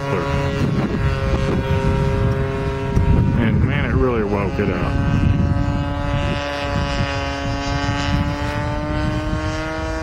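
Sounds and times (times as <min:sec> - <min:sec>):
model plane engine drone: 0:00.0 - 0:10.0.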